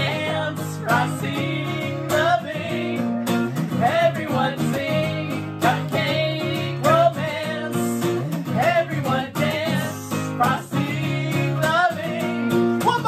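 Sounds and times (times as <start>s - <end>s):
acoustic guitar strumming: 0.0s - 13.0s
man and woman singing: 0.0s - 13.0s.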